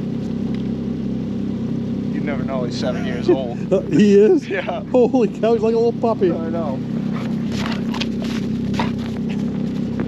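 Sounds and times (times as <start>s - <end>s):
steady low hum: 0.0s - 10.0s
paws crunching in snow: 7.0s - 10.0s.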